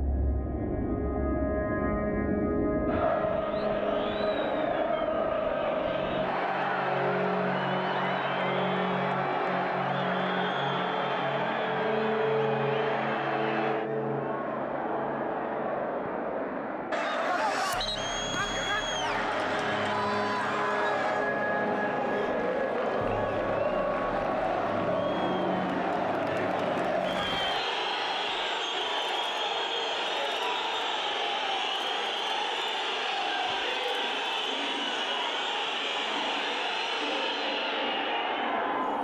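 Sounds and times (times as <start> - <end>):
fans chanting and shouting: 2.9 - 39.0.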